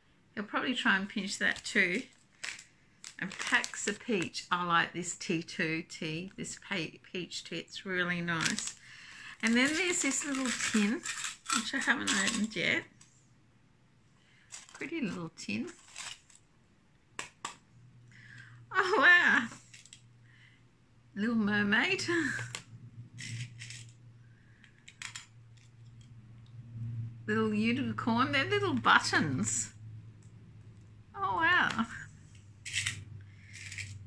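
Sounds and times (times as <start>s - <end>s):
low steady hum: 0.0s - 34.0s
metal markers scraping rustles: 9.4s - 13.2s, 14.5s - 16.4s, 23.1s - 24.0s, 32.2s - 34.0s.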